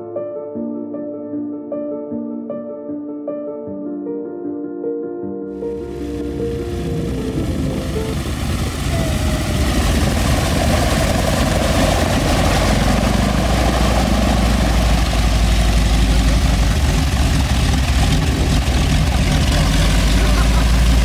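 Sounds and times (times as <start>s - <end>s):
propeller engine idling: 5.7s - 21.0s.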